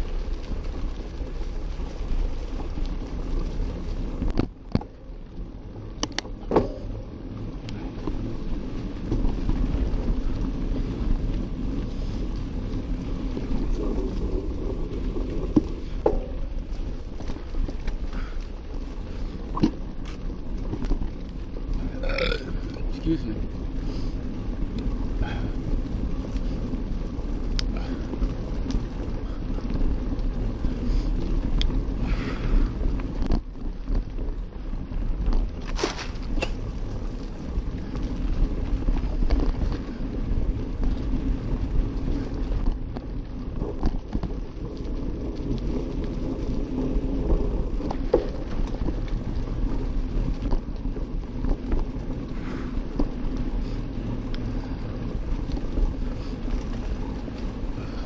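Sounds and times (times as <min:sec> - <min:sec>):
bike clicks and rattles: 0:00.0 - 0:58.0
bike tyres rumbling on dirt: 0:00.0 - 0:58.0.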